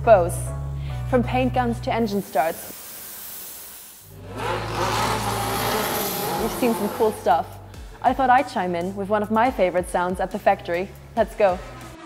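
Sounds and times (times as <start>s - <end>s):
race car engine running: 4.2s - 7.2s.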